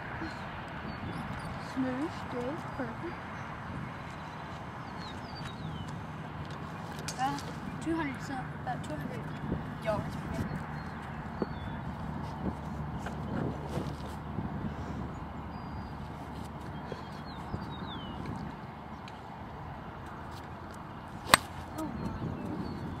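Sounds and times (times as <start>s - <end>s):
outdoor background noise: 0.0s - 23.0s
golf club striking ball: 21.2s - 21.7s.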